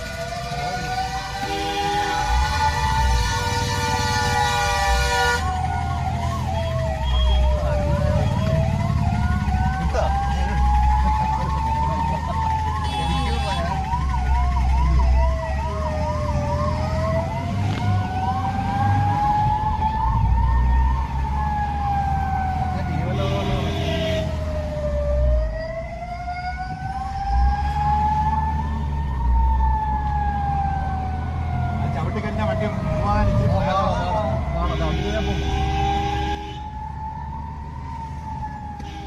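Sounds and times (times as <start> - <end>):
idling traffic rumble: 0.0 - 39.0
siren wailing: 0.0 - 39.0
siren yelping: 0.0 - 39.0.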